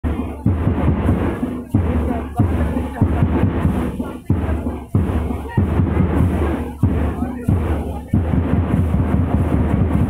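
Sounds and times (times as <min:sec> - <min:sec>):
deep drum beats: 0:00.0 - 0:10.0.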